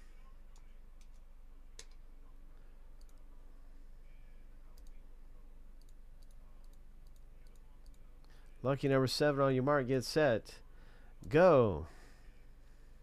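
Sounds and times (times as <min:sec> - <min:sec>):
low steady hum: 0:00.0 - 0:13.0
computer mouse clicks: 0:01.8 - 0:02.0, 0:03.0 - 0:03.2, 0:04.8 - 0:05.0, 0:05.8 - 0:08.0.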